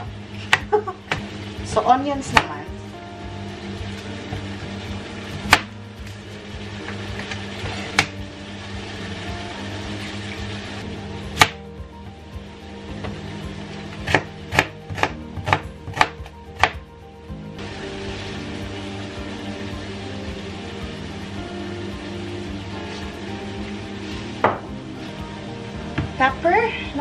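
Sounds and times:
knife chopping onion on board: 2.3 - 2.6, 14.0 - 16.8.

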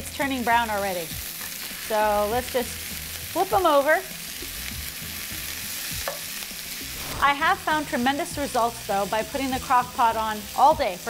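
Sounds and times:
meat sizzling in oil: 0.0 - 11.0.

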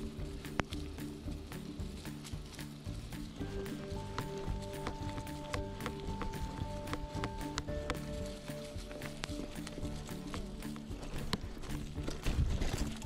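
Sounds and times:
mountain bike rattling: 0.0 - 13.0
music with long held notes: 0.0 - 13.0
tyre and wind rumble: 0.0 - 13.0.

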